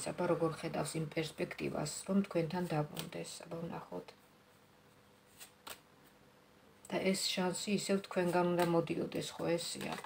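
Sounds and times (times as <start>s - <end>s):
cards being shuffled: 5.3s - 5.8s.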